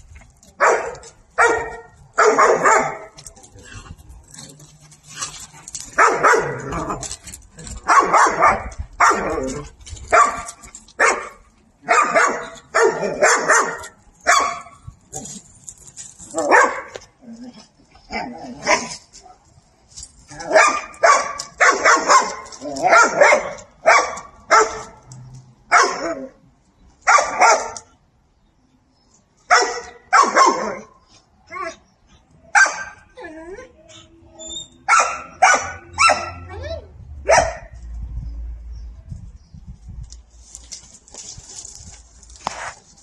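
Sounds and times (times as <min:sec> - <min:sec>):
dog barking: 0:00.6 - 0:03.1, 0:06.0 - 0:06.6, 0:07.9 - 0:09.3, 0:10.1 - 0:14.7, 0:16.5 - 0:16.9, 0:20.6 - 0:24.9, 0:25.7 - 0:26.1, 0:27.1 - 0:27.8, 0:29.5 - 0:30.9, 0:32.6 - 0:33.0, 0:34.9 - 0:36.4, 0:37.3 - 0:37.7.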